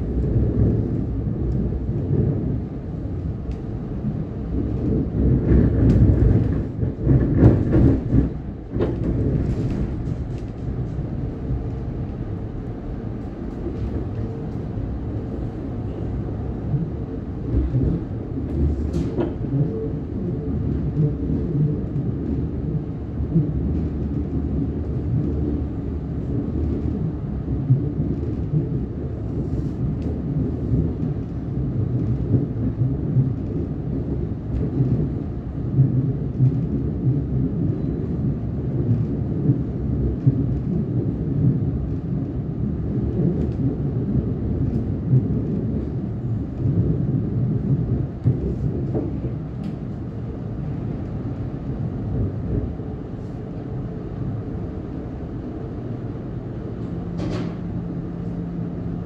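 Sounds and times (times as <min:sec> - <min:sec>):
electric train rumbling on track: 0:00.0 - 0:59.0.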